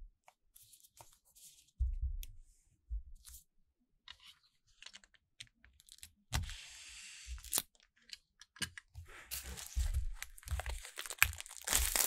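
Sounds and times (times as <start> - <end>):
plastic shrink wrap crinkling: 9.3 - 12.0.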